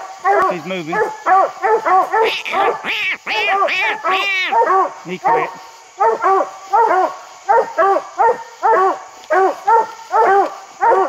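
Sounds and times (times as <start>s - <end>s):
dog barking rapidly: 0.2s - 11.0s.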